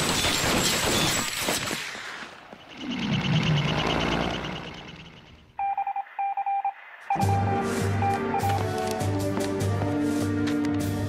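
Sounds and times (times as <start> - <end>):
short electronic beeps: 5.5 - 8.6
music with steady beat: 7.1 - 11.0.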